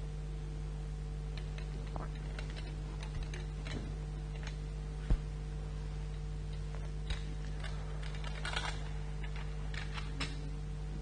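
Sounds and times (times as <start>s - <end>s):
low electrical hum: 0.0s - 11.0s
objects clicking and knocking: 1.4s - 5.2s, 6.1s - 10.5s.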